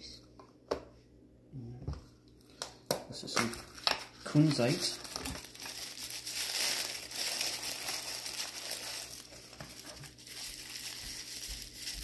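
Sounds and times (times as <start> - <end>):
tissue paper crinkling: 3.6 - 12.0.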